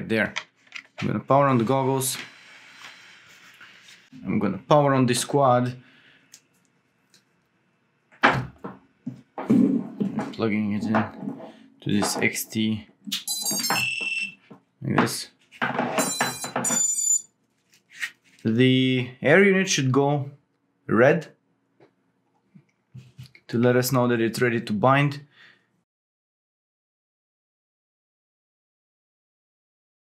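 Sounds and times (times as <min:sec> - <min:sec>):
person speaking: 0:00.0 - 0:02.3, 0:10.0 - 0:13.0, 0:18.4 - 0:20.3
high-pitched electronic beeps: 0:13.1 - 0:14.4, 0:16.0 - 0:17.3
hands rustling goggles: 0:17.5 - 0:18.5.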